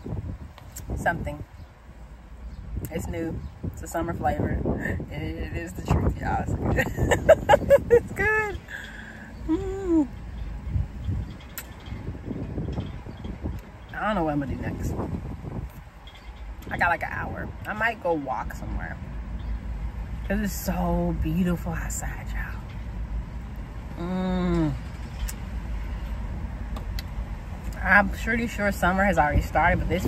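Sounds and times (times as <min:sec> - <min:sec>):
wind buffeting microphone: 0:00.0 - 0:01.8, 0:02.4 - 0:19.9, 0:26.8 - 0:30.0
low rumble of vehicles: 0:00.0 - 0:30.0.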